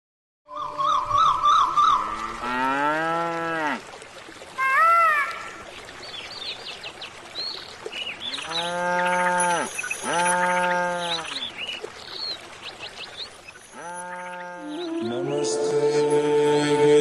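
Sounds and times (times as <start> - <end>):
small birds chirping: 6.0 - 15.1.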